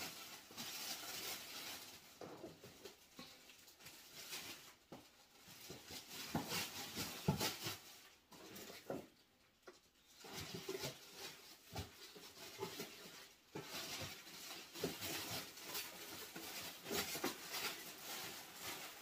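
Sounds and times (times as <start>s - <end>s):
rustling of items handled: 0.0s - 19.0s.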